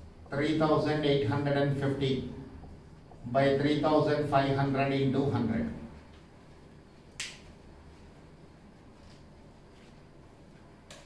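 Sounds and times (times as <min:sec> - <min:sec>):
sharp click: 0:07.2 - 0:07.5.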